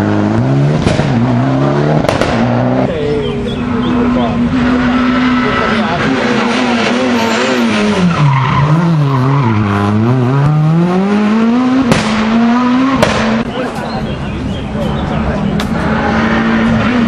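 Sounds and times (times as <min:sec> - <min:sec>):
rally car engine revving: 0:00.0 - 0:17.0
sharp crack: 0:02.0 - 0:02.5, 0:11.9 - 0:12.3, 0:13.0 - 0:13.5.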